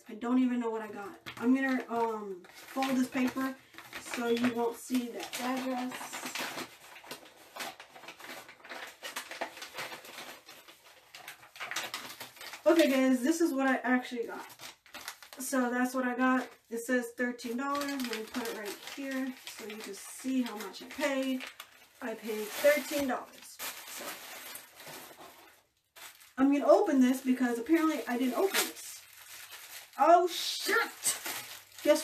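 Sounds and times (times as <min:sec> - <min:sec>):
paper crackling and rustling: 0:00.8 - 0:15.5, 0:17.4 - 0:32.0.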